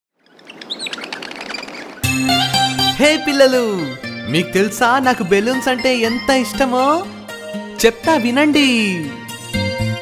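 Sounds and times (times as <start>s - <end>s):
birds chirping: 0.1s - 4.2s.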